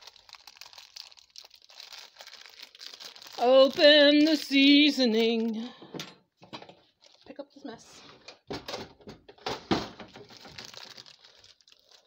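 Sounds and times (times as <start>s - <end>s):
seasoning packet rustling: 0.0s - 5.6s, 6.8s - 7.4s, 10.2s - 12.0s.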